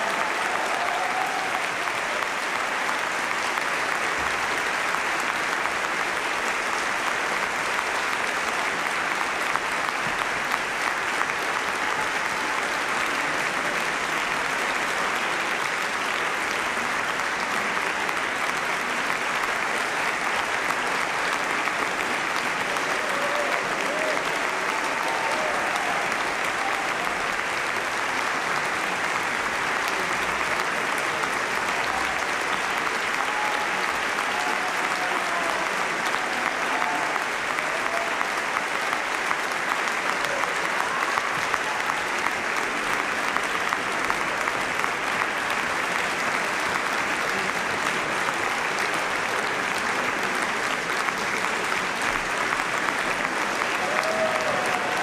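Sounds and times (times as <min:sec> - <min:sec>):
audience applauding: 0:00.0 - 0:55.0.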